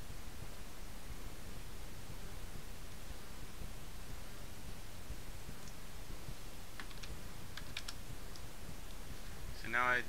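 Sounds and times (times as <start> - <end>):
low background rumble: 0.0 - 10.0
keyboard keystrokes: 6.8 - 8.4.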